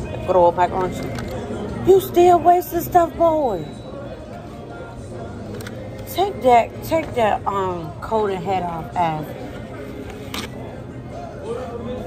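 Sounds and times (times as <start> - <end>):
faint background music: 0.0 - 12.0
restaurant dining room noise: 0.0 - 12.0.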